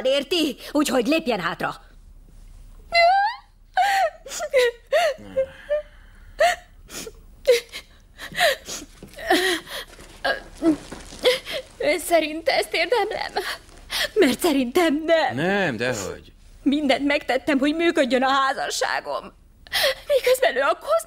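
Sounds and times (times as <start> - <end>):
woman crying: 2.9 - 14.6.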